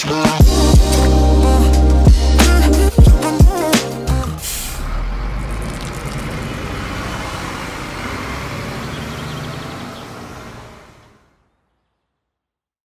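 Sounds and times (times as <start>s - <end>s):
bus engine running: 4.1s - 11.7s
road rumble: 4.1s - 12.3s.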